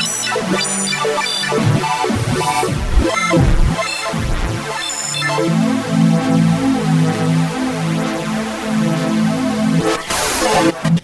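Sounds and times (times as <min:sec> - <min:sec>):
gliding synthesizer bass notes: 0:00.0 - 0:09.8
synthesizer knobs turning: 0:01.4 - 0:04.7.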